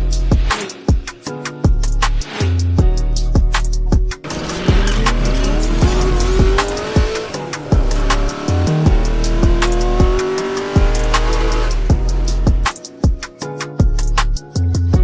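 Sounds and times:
electronic music with thumping beat: 0.0 - 15.0
race car engine revving: 4.2 - 11.9.

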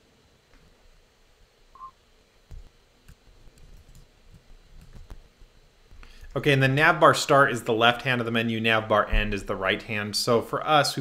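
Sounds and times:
electronic beep: 1.8 - 2.0
low thump: 9.1 - 9.5.

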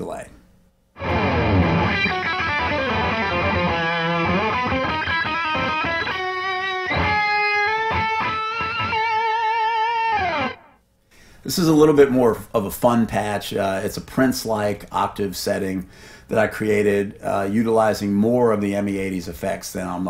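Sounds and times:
electric guitar country lick: 1.0 - 10.8.

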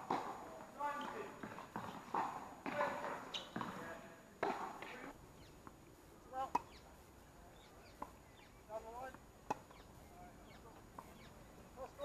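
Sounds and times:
tennis balls hit by rackets: 0.0 - 6.9, 7.8 - 12.0
voices calling: 0.0 - 12.0.

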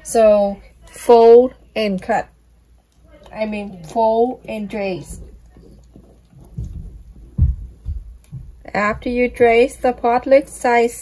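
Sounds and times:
soft dull handling thumps: 3.2 - 9.9.

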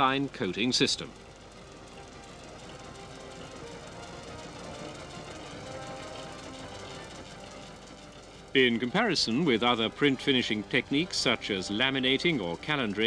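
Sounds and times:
background music sustained notes: 0.0 - 13.0
steady low hum: 0.0 - 13.0.

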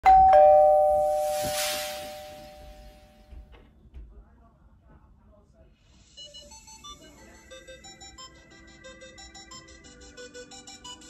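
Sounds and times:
two-note ding-dong chime: 0.0 - 3.1
soft hiss: 0.9 - 3.4.

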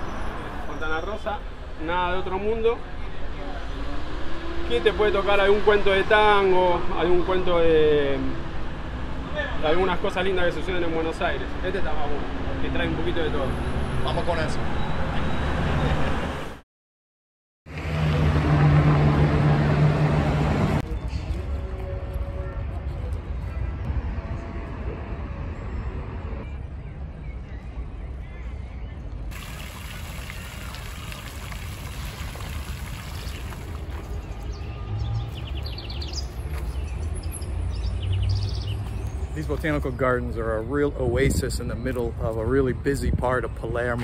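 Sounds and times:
street traffic road noise: 0.0 - 16.6, 17.7 - 44.0
vehicle engine low hum: 17.7 - 21.6
birds chirping: 28.8 - 40.7
fountain water splashing: 29.3 - 34.4.

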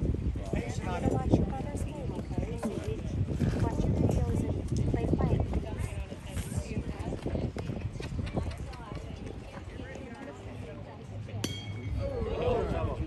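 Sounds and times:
people talking: 0.4 - 13.0
metallic clink: 11.4 - 12.0.

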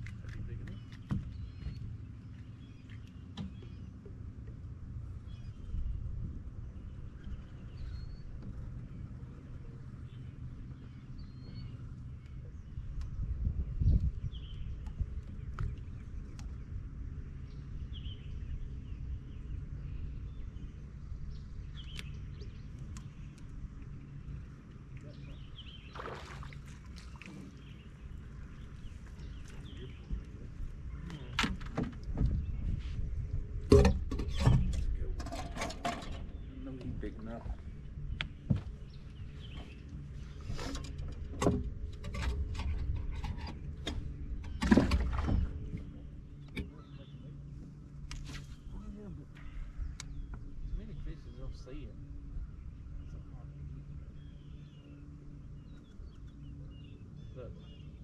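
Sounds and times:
knocks and thumps on boat: 0.1 - 2.0, 2.9 - 4.6, 31.2 - 32.8, 33.5 - 37.2, 38.2 - 47.8
electric boat motor humming: 0.1 - 35.3, 36.0 - 58.0.

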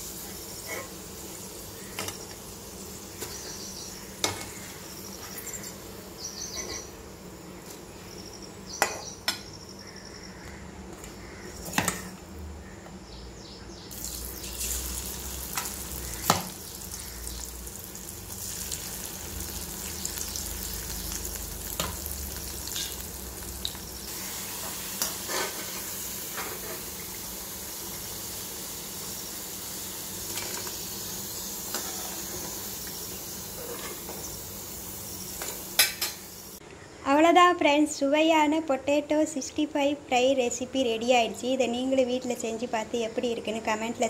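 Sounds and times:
food sizzling in hot oil: 0.0 - 6.2, 13.9 - 36.6
metal ladle scraping a pan: 25.0 - 25.8, 31.7 - 32.4.

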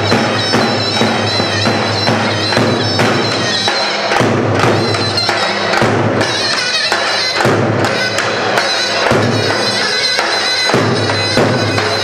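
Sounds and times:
thudding drum beats: 0.0 - 12.0
wind instrument melody: 0.0 - 12.0.

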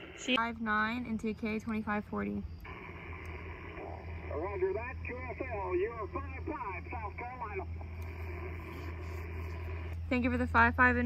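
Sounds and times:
radio static hiss: 0.0 - 0.4, 2.3 - 11.0
steady low rumble: 0.0 - 11.0.

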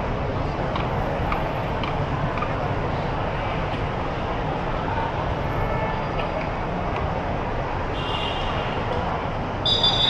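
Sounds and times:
indistinct crowd noise: 0.0 - 10.0.

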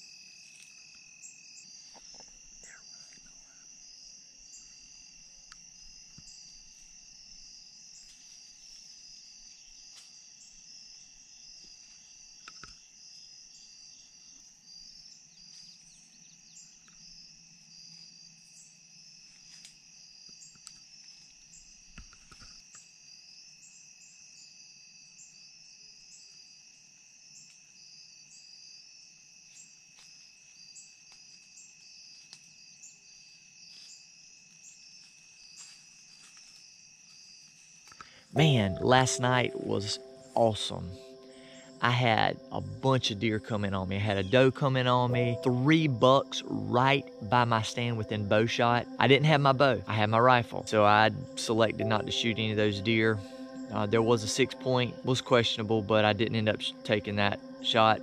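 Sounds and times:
crickets and insects chirping: 0.0 - 58.0
thin steady tone: 38.3 - 58.0.

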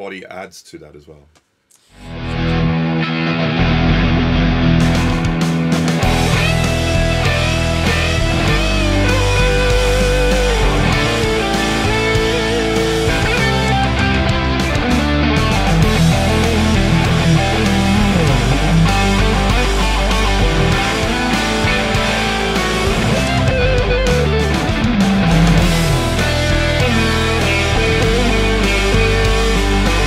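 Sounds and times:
backing track: 2.0 - 30.0
electric guitar lead line: 2.0 - 30.0.

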